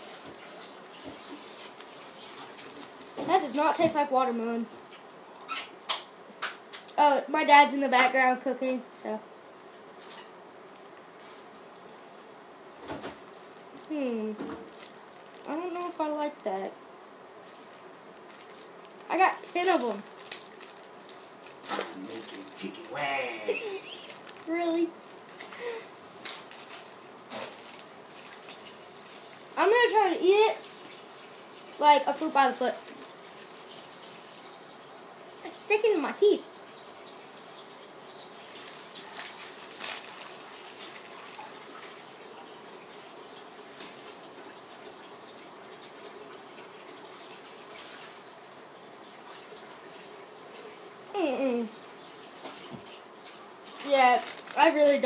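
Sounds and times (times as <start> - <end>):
watery hiss of cooking: 0.0 - 4.2
plastic wrapper crinkling: 0.0 - 6.5, 12.7 - 23.0, 23.6 - 34.5, 38.2 - 45.0, 53.6 - 55.0
brief voice: 22.2 - 23.6.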